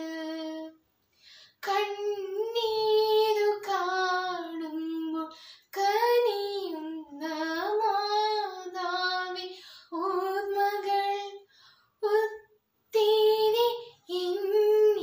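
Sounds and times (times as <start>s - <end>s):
girl singing unaccompanied: 0.0s - 0.8s, 1.5s - 15.0s.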